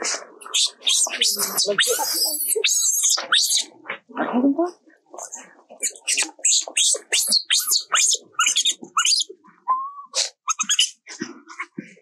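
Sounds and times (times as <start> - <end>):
baby monkey screaming: 0.4 - 3.7, 5.2 - 9.3, 10.2 - 11.0.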